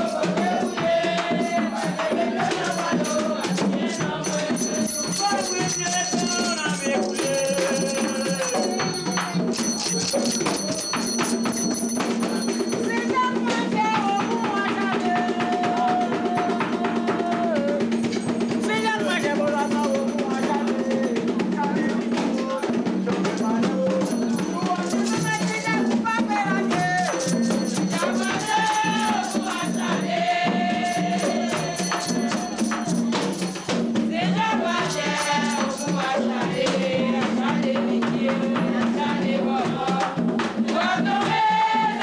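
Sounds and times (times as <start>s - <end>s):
hand percussion with rattle strokes: 0.0s - 42.0s
voices singing: 0.0s - 42.0s
shaken rattles: 4.2s - 13.0s, 23.4s - 30.0s.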